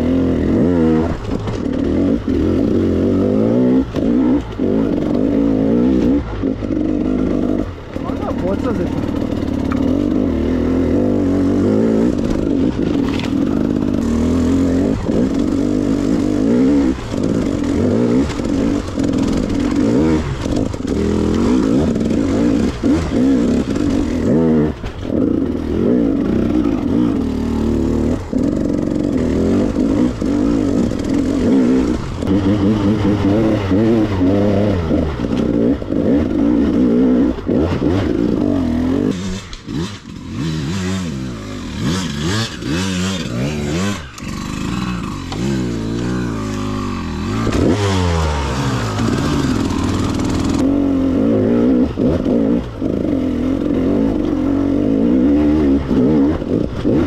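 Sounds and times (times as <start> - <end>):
two-stroke motorcycle engine revving: 0.0 - 57.0.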